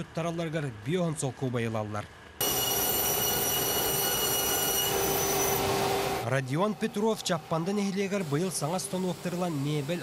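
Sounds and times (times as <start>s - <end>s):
machinery whining: 2.4s - 10.0s.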